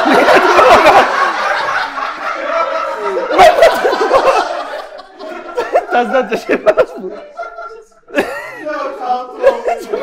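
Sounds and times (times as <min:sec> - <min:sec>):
laughter: 0:00.0 - 0:10.0.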